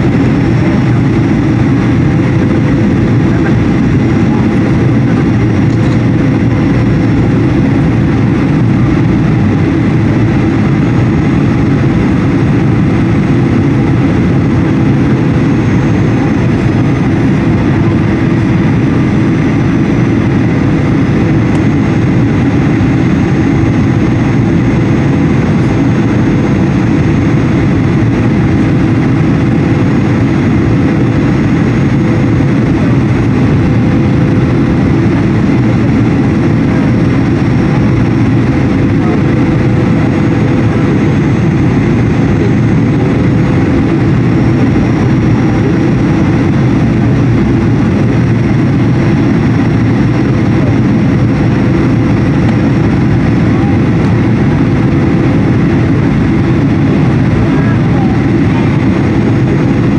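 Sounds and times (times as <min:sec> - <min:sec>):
jet engine and airflow rumble: 0:00.0 - 0:59.9.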